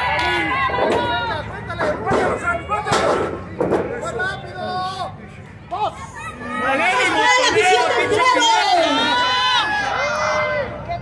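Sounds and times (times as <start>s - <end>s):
spectators shouting and talking: 0.0s - 11.0s.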